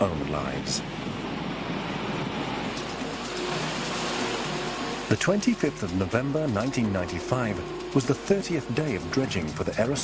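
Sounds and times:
rushing water and falling spray: 0.0 - 10.0.

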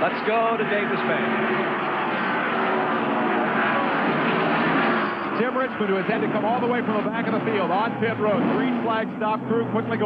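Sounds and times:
race car engines at speed: 0.0 - 10.0.

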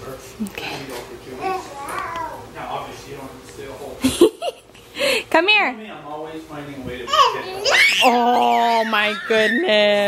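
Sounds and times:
toddler babbling: 1.4 - 2.5, 7.1 - 9.5
toddler whining: 1.4 - 2.5, 7.1 - 9.8.

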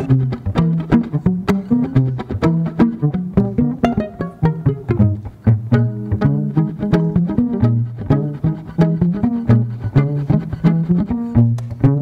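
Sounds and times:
low bass figure: 0.0 - 12.0
quick plucked string notes: 0.0 - 12.0.

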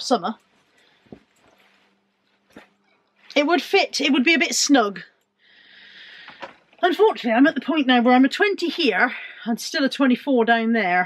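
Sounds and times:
padded coat rustling: 0.5 - 2.8.

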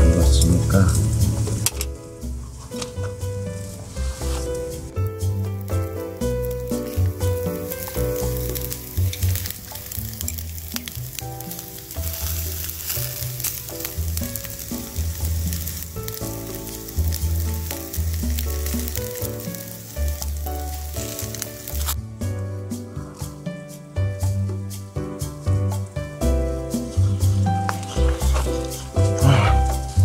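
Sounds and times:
background music with bass: 0.0 - 30.0
chicken sizzling on charcoal grill: 0.0 - 30.0.

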